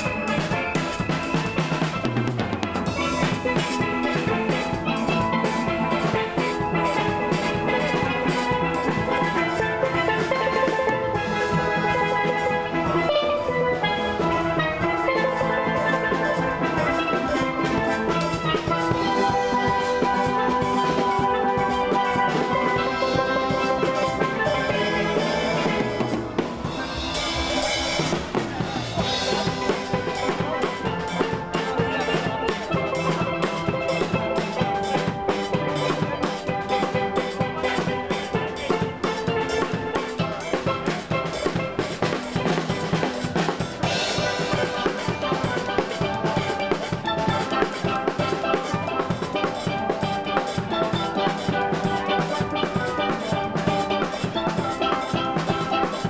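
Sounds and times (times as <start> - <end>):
steady drum beat: 0.0 - 56.0
steel band playing: 0.0 - 56.0.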